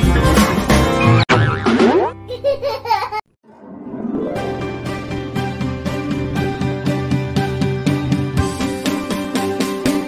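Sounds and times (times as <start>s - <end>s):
wobbling pitched effects: 3.4s - 8.3s
rising pitch sound effect: 3.4s - 8.6s
cartoon intro jingle: 3.5s - 8.3s.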